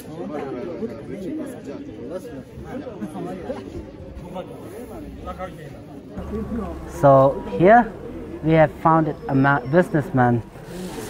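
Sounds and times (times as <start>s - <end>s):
men talking: 0.1s - 10.5s.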